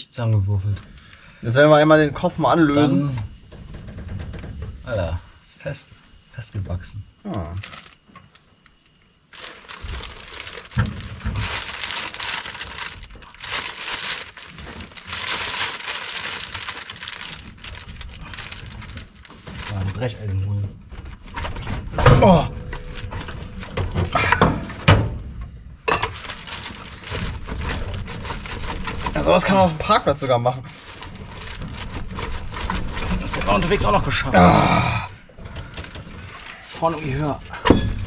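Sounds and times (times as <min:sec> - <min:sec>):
metal parts rustling and scraping: 0:07.6 - 0:08.0, 0:09.3 - 0:24.9, 0:25.9 - 0:29.8, 0:30.7 - 0:34.3, 0:35.3 - 0:38.0.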